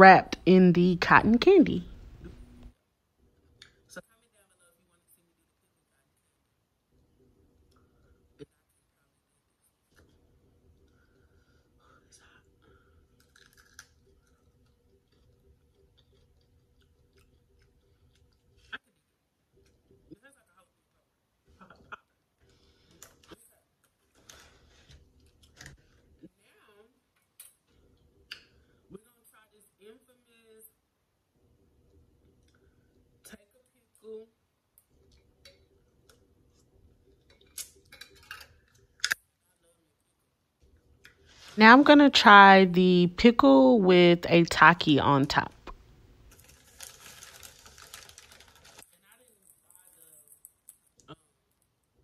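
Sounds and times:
faint clicks and crackles: 0:12.6 - 0:20.3, 0:45.7 - 0:52.0
foil chip bag crinkling: 0:46.2 - 0:50.8.

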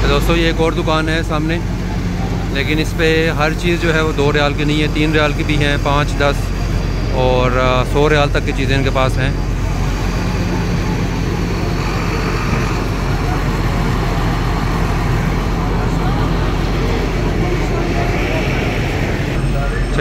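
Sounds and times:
idling motor vehicles hum: 0:00.0 - 0:20.0
indistinct voices: 0:00.0 - 0:20.0.

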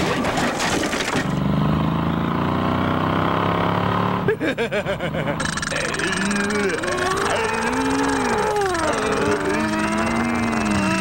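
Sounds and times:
cartoon clattering crash: 0:00.0 - 0:01.4
cartoon car engine drone: 0:00.0 - 0:11.0.

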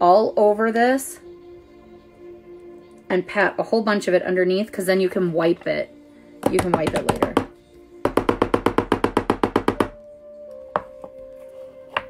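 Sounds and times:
rapid sharp knocks: 0:06.4 - 0:09.9.

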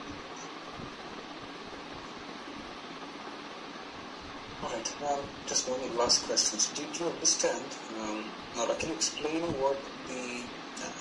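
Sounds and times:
call line hiss: 0:00.0 - 0:11.0.

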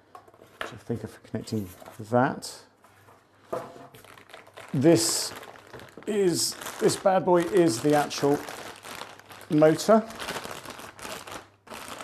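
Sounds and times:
plastic wrapping crinkling: 0:03.9 - 0:12.0.

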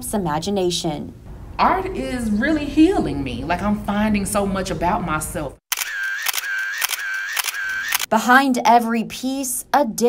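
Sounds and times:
camera shutter clicking: 0:05.7 - 0:08.1.

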